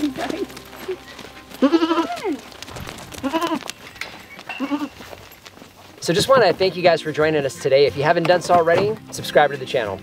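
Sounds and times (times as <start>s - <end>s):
goats bleating: 0.0s - 5.2s.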